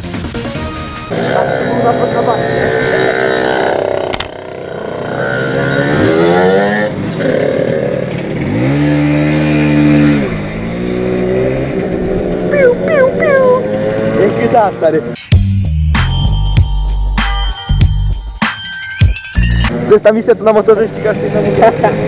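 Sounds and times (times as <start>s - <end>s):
moped engine revving: 1.1s - 15.2s.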